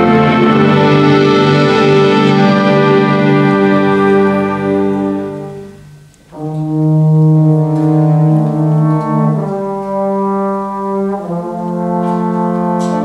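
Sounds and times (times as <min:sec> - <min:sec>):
wind ensemble playing chords: 0:00.0 - 0:13.0.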